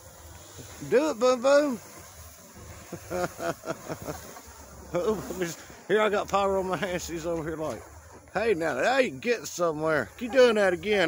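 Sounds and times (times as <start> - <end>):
firework fountain hissing: 0.0 - 11.0
laughter: 2.8 - 5.4.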